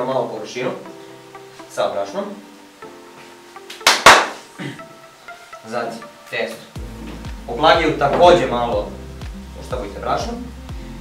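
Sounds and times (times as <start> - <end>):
hand slaps: 3.7 - 4.4.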